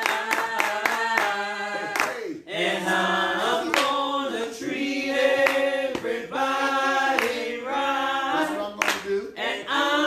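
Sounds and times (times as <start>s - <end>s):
hand clapping on the beat: 0.0s - 2.3s, 3.6s - 4.1s, 5.3s - 6.2s, 6.8s - 7.6s, 8.4s - 9.2s
voices singing a worship song: 0.0s - 10.0s.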